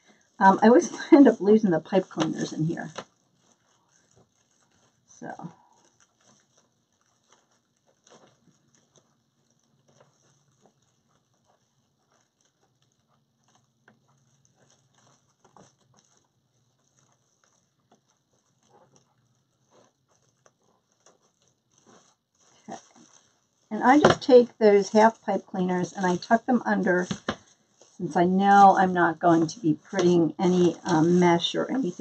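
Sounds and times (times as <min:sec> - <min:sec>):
faint ticks and rustles of hands: 0:00.0 - 0:32.0.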